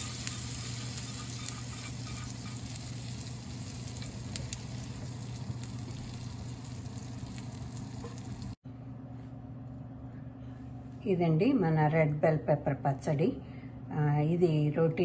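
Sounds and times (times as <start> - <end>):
hot oil sizzling and crackling: 0.0 - 8.6.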